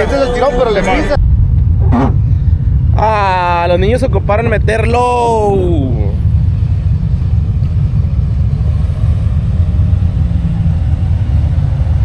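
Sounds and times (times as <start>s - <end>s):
off-road vehicle rumble: 0.0s - 12.0s.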